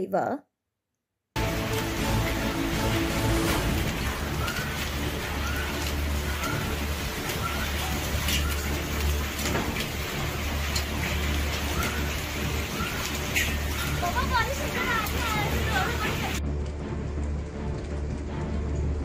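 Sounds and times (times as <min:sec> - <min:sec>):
low rumble: 0:01.4 - 0:13.9, 0:15.2 - 0:19.0
heavy rain and hail hiss: 0:01.4 - 0:19.0
sharp hail hits: 0:01.4 - 0:19.0.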